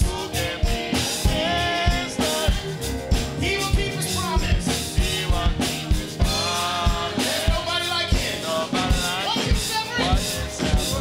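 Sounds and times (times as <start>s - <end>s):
bass drum beat: 0.0s - 11.0s
church choir singing gospel: 0.0s - 11.0s
live band: 0.0s - 11.0s.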